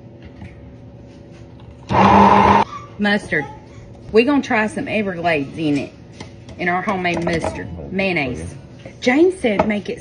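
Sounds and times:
immersion blender running: 0:01.9 - 0:02.6.

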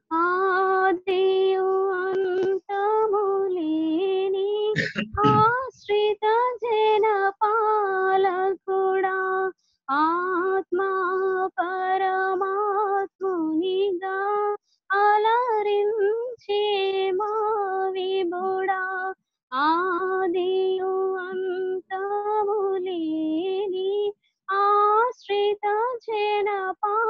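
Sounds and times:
woman singing unaccompanied: 0:00.0 - 0:27.0.

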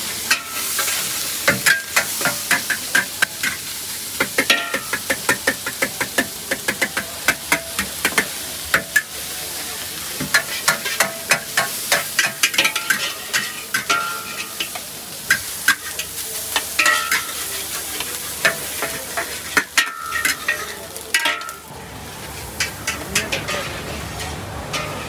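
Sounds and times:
food sizzling: 0:00.0 - 0:25.0
metal spatula striking a wok: 0:00.3 - 0:03.6, 0:04.2 - 0:09.1, 0:10.2 - 0:21.7, 0:22.6 - 0:23.7, 0:24.7 - 0:25.0.

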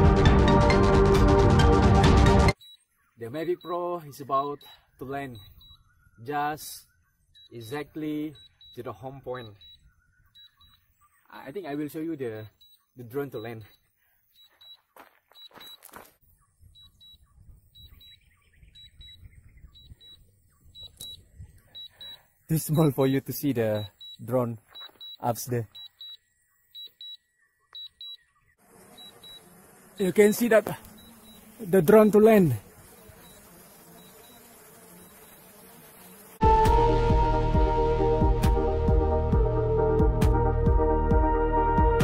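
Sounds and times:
drone propellers buzzing: 0:28.7 - 0:40.9.

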